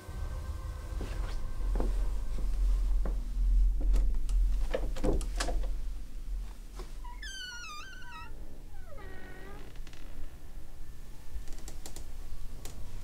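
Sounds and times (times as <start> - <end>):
door hinges creaking: 6.8 - 10.4.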